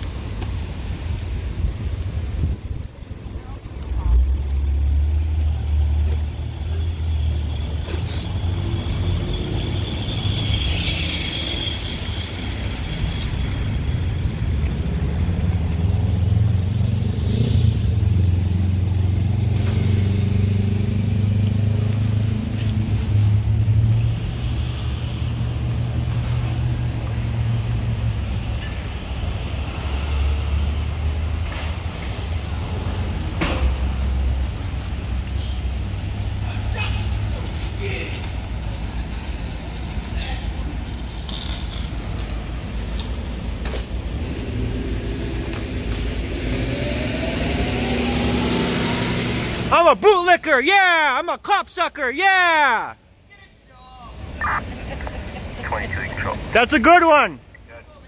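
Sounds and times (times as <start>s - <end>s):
traffic engine rumble: 0.0s - 58.0s.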